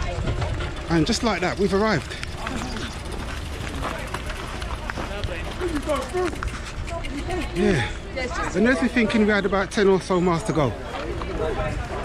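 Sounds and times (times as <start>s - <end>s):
wind rumble on microphone: 0.0s - 7.6s
people talking: 0.0s - 12.0s.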